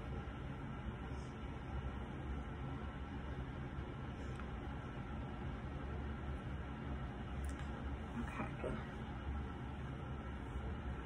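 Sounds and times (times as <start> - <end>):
steady low hum with hiss: 0.0 - 11.0.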